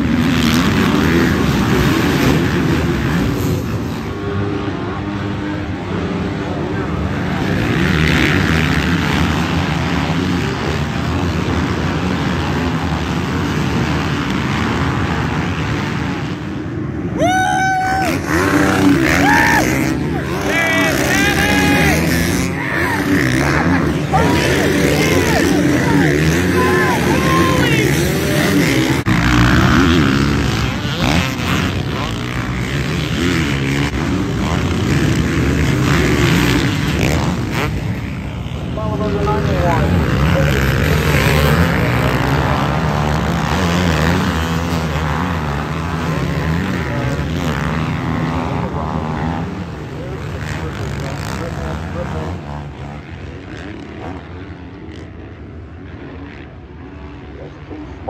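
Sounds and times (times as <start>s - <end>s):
motocross bikes revving: 0.0s - 58.0s.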